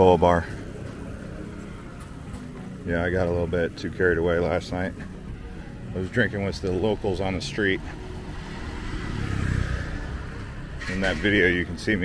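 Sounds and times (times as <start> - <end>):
vehicle engine rumble passing: 0.0 - 12.0.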